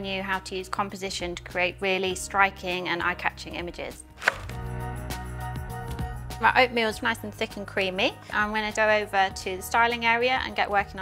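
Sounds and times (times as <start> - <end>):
knife chopping on wooden board: 4.2 - 4.6.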